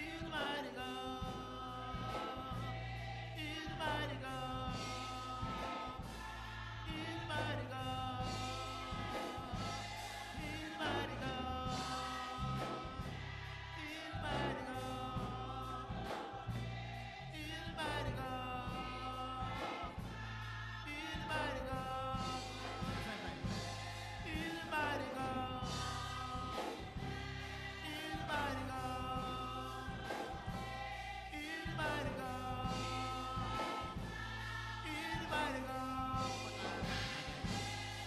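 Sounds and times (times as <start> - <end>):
gospel choir singing: 0.0 - 38.0
steady bass: 0.0 - 38.0.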